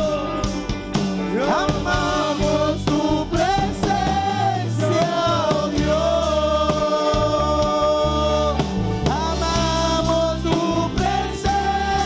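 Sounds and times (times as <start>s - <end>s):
gospel singing: 0.0s - 12.0s
instrumental backing with bass: 0.0s - 12.0s.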